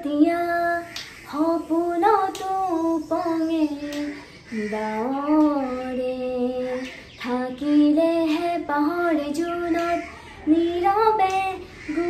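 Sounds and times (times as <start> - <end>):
young woman singing: 0.0 - 12.0.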